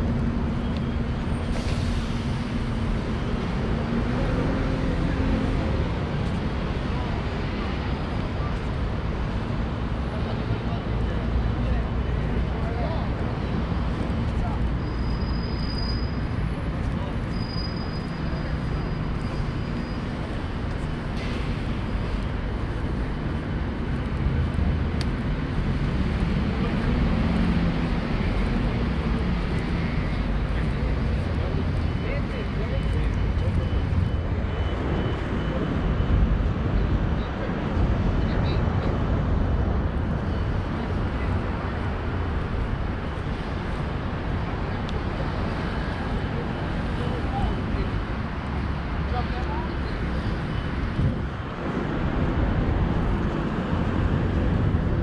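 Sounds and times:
traffic noise: 0.0s - 55.0s.

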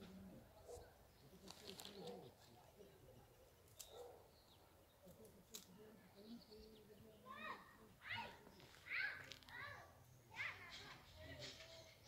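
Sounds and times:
faint distant bird calls: 0.0s - 12.0s.

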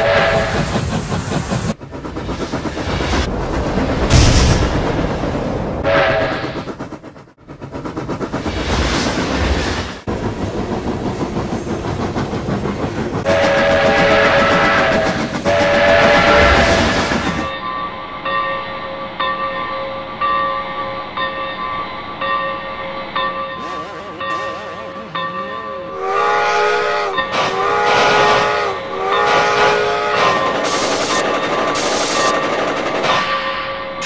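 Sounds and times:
steam whistle blasts: 0.0s - 0.6s, 13.2s - 17.0s, 23.6s - 31.2s
steam locomotive running: 0.0s - 17.6s, 22.3s - 34.0s
locomotive bell ringing: 17.5s - 27.6s.

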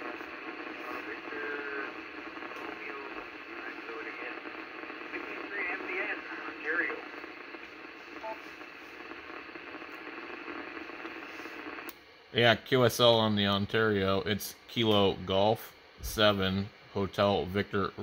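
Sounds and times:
radio static noise: 0.0s - 18.0s
faint voice over radio: 0.4s - 7.5s.

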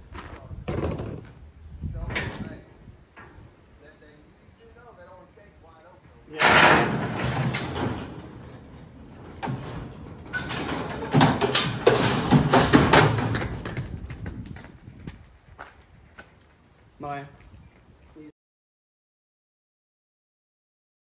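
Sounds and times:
metal gate crashing open: 6.3s - 13.5s
metal clanks and rattles: 6.3s - 14.3s.

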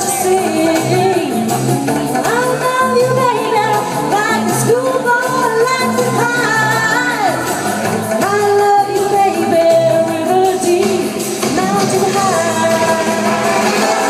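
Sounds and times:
amplified backing music: 0.0s - 14.0s
woman singing pop song: 0.0s - 14.0s.

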